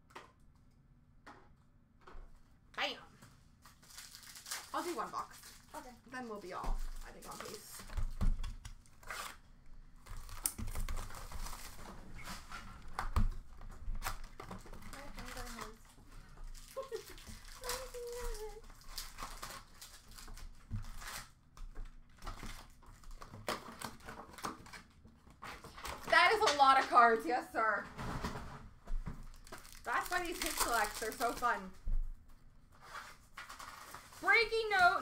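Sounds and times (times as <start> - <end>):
wrappers crinkling and tearing: 3.5 - 8.0, 8.8 - 9.4, 10.0 - 21.4, 22.1 - 26.3, 29.2 - 31.8, 32.8 - 35.0.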